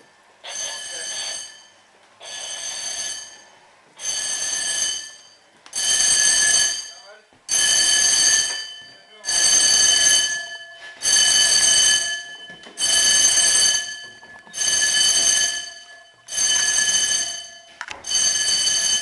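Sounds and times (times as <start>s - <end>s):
fire alarm pulsed blasts: 0.4s - 19.0s.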